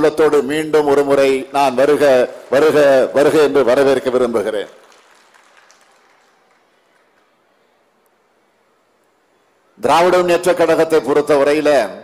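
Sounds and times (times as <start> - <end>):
faint crowd applause: 0.8 - 8.9.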